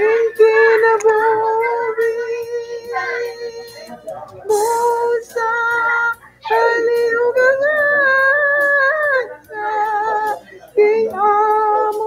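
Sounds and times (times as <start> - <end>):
woman singing slow song: 0.0 - 12.0.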